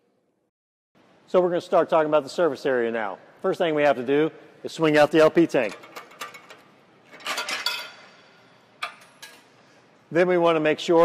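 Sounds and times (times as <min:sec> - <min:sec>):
metal clinking and rattling: 0:05.6 - 0:08.2.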